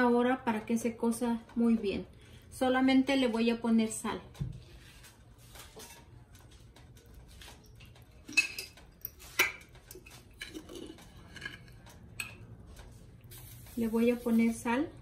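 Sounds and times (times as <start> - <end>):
utensils and dishes clinking: 5.6 - 13.6.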